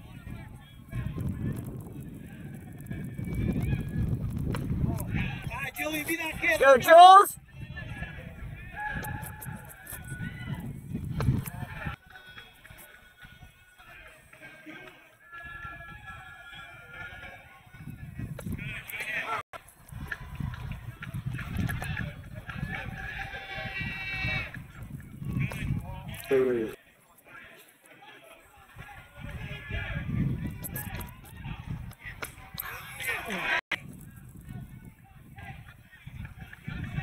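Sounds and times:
spectators chattering and calling: 0.0 - 37.0.

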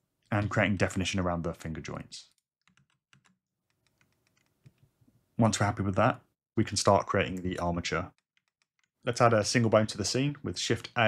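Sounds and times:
computer keyboard clicks: 2.7 - 4.8, 8.1 - 8.9.

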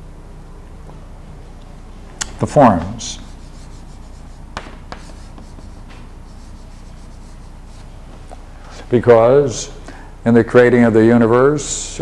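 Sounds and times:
low background hum: 0.0 - 12.0
chalk scratching on blackboard: 2.6 - 8.0
chalk tapping on blackboard: 2.7 - 7.9.

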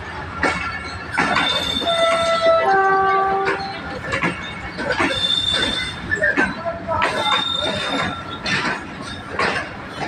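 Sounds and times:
train wheels clicking over rail joints: 0.0 - 10.0.

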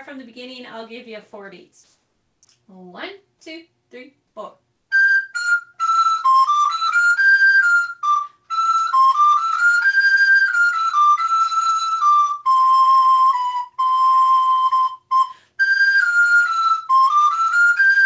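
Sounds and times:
recorder dance melody: 4.9 - 18.0.

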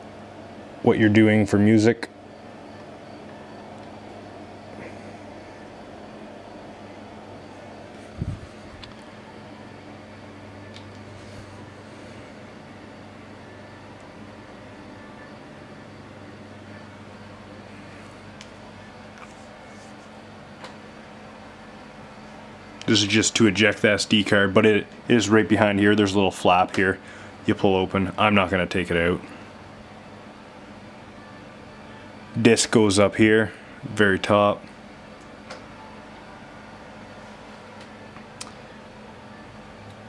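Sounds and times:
low electrical hum: 0.0 - 40.0
steady background hiss: 0.0 - 40.0.

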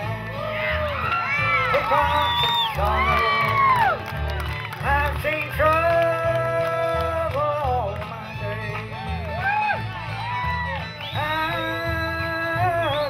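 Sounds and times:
bluegrass band playing: 0.0 - 13.0.

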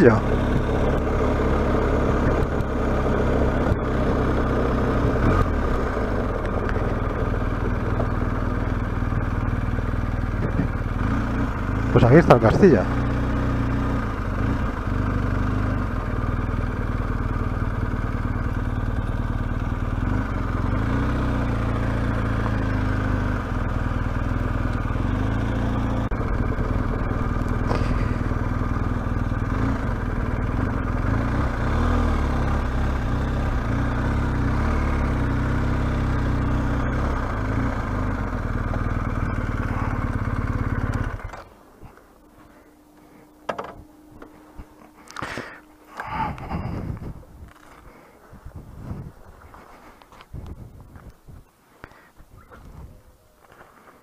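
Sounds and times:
motorcycle engine running: 0.0 - 53.6
faint steady tone: 39.1 - 48.4.

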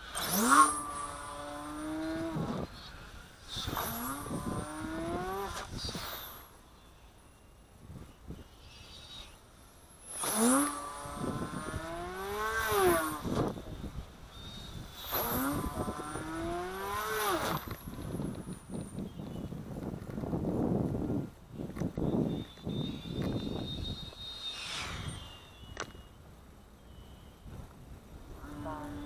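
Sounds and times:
rc airplane motor whine: 0.0 - 29.0.

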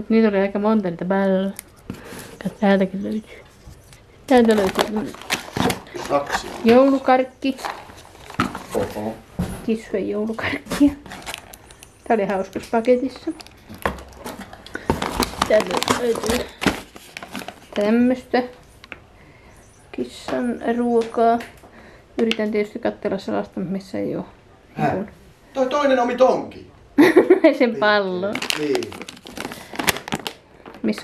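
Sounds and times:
plastic and card crackles: 1.4 - 9.2, 10.6 - 19.0, 28.2 - 31.0
packaging rustling in cardboard box: 3.6 - 9.2, 10.5 - 18.0, 28.3 - 30.4
person speaking: 27.6 - 29.0.

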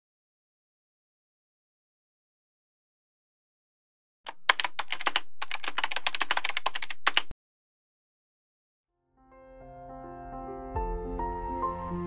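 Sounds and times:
rapid typing on keys: 4.3 - 7.3.

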